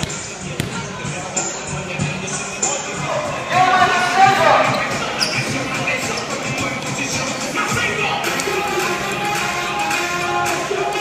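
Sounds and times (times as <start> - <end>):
basketballs bouncing on court: 0.0 - 1.0.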